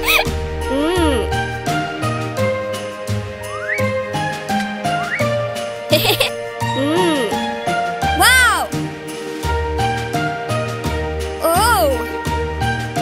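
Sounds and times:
cartoon music with bass line: 0.0s - 8.8s.

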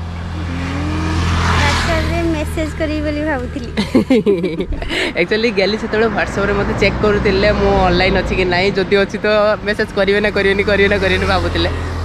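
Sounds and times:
vehicle passing by: 0.0s - 12.0s.

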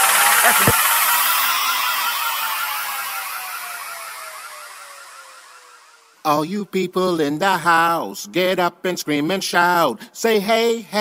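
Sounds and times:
electronic tone sliding down: 0.0s - 6.3s.

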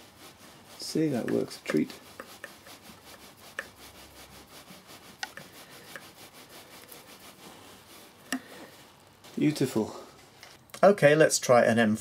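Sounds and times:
faint rubbing: 0.0s - 10.7s.

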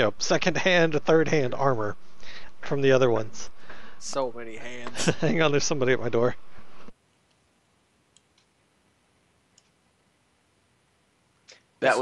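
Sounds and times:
faint room hiss: 0.0s - 12.0s
sharp clicks: 8.1s - 8.6s, 9.5s - 9.8s.

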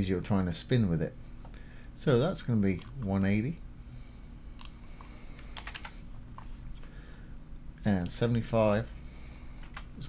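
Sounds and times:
typing on computer keyboard: 5.6s - 5.9s.

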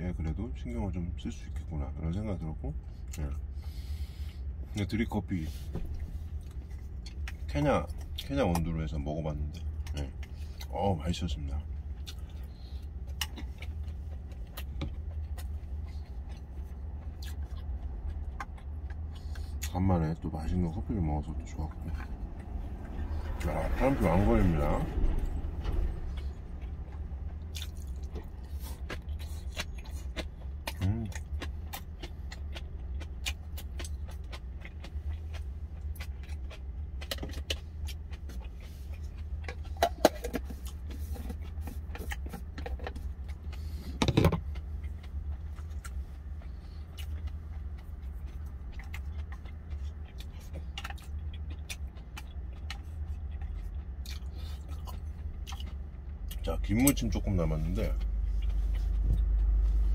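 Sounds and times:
idling engine hum: 2.8s - 59.9s
chewing: 3.0s - 59.9s.

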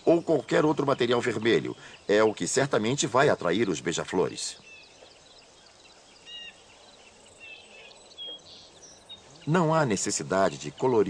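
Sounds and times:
faint birds chirping: 0.0s - 11.0s.

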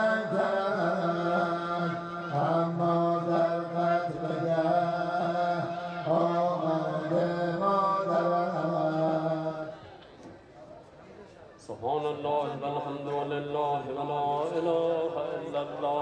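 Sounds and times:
mourning chant singing: 0.0s - 10.0s, 11.7s - 16.0s.

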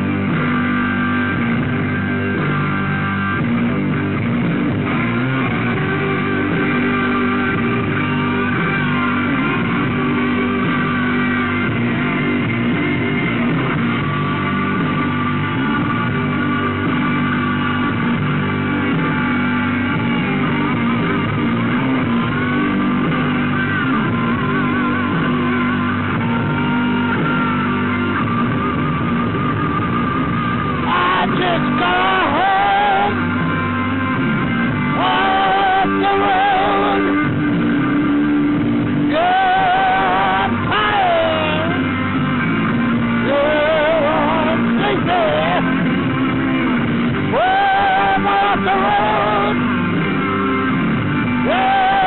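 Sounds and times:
rock music with guitar and bass: 0.0s - 52.0s.

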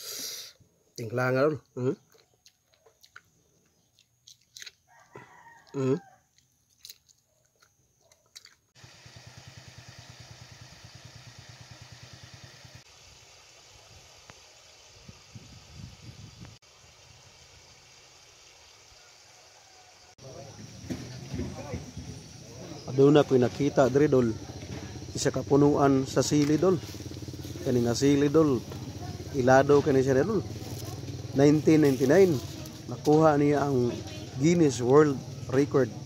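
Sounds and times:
outdoor background hiss: 0.0s - 2.0s, 8.8s - 36.0s
rooster crowing: 4.9s - 6.4s, 18.8s - 21.8s.

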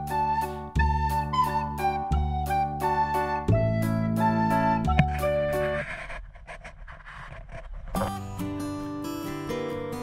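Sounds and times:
music: 0.0s - 6.2s, 8.0s - 10.0s.

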